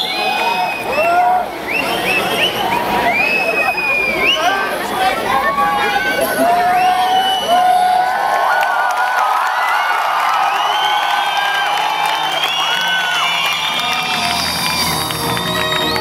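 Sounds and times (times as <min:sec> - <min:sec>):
crowd cheering and whooping: 0:00.0 - 0:16.0.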